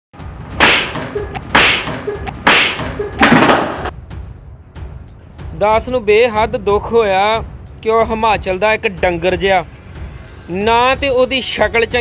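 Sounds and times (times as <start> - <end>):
hand slapping a face: 0.6 - 3.8.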